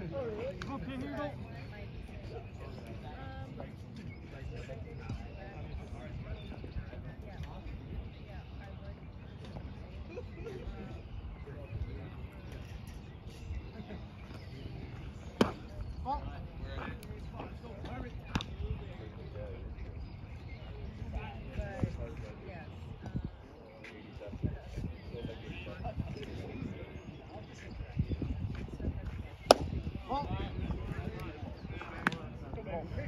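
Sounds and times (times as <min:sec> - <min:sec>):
baseball smacking catcher's mitt: 0:29.4 - 0:29.8.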